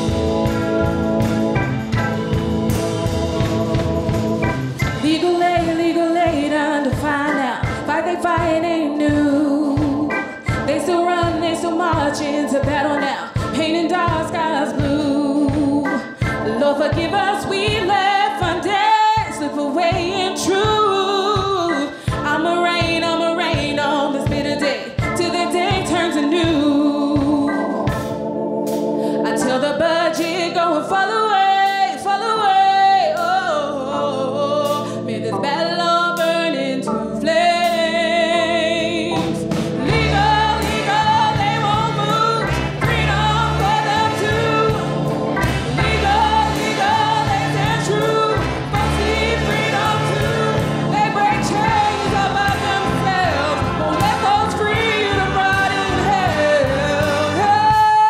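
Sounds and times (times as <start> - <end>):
live band playing: 0.0 - 33.4, 37.3 - 58.0
woman singing lead: 2.7 - 28.2, 29.0 - 58.0
backing singers: 39.1 - 57.7.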